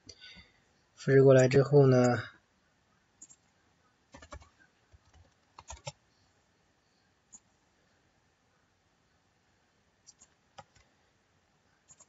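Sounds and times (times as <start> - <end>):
keyboard and mouse clicks: 3.2 - 3.5, 4.1 - 6.0, 10.0 - 10.9.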